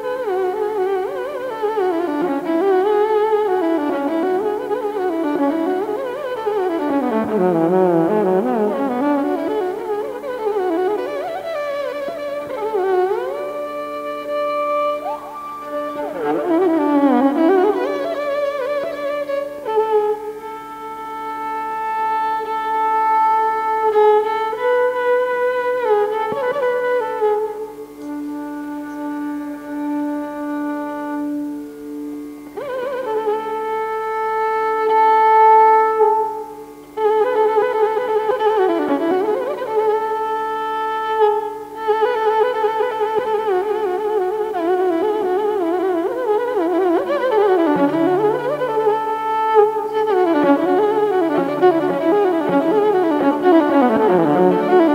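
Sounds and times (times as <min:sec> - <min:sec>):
violin playing slow passage: 0:00.0 - 0:54.9.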